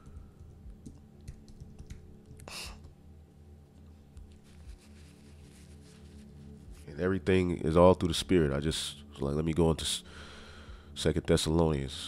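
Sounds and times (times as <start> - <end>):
typing on computer keyboard: 0.0 - 2.5.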